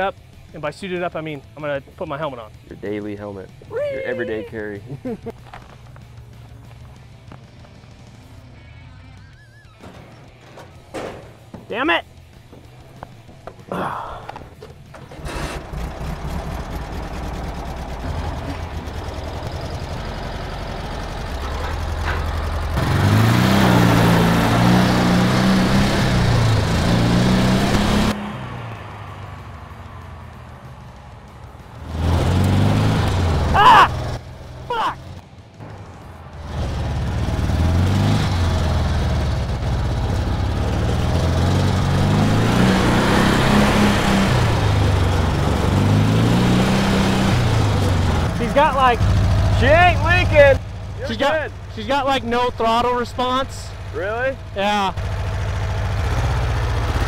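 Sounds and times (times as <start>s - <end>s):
dune buggy engine revving: 9.1s - 57.0s.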